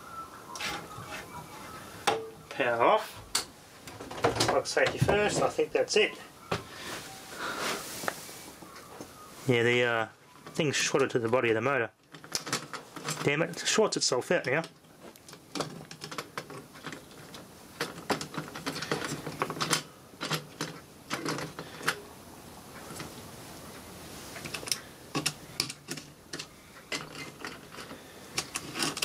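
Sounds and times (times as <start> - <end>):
clicks and rattles of handled parts: 12.0 - 22.0, 24.4 - 29.0.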